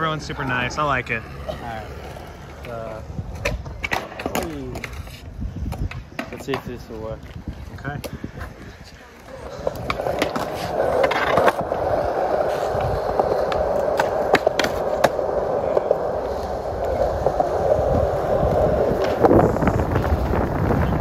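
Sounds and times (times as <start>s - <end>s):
skateboard wheels rolling on concrete: 0.0s - 21.0s
skateboard bump: 1.3s - 6.8s, 9.2s - 21.0s.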